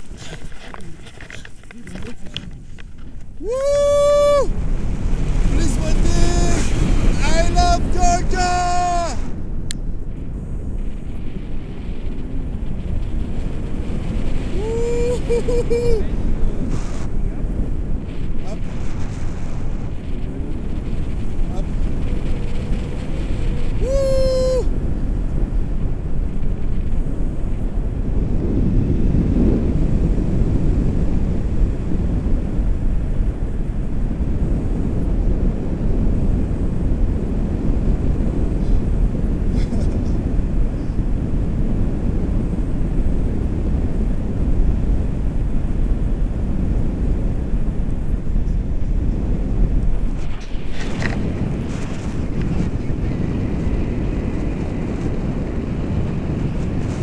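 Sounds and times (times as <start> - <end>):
wind rumbling on microphone: 0.0 - 57.0.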